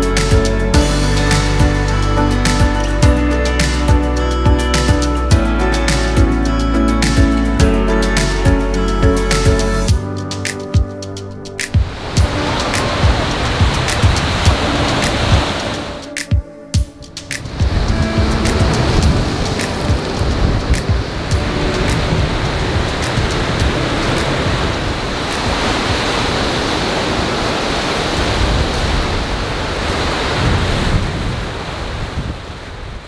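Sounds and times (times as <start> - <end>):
music: 0.0 - 24.9
surf crashing on rocks: 11.6 - 16.2, 17.3 - 33.0.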